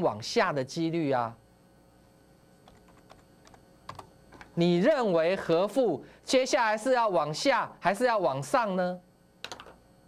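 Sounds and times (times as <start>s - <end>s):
computer keyboard clicks: 2.6s - 4.1s, 9.4s - 9.8s.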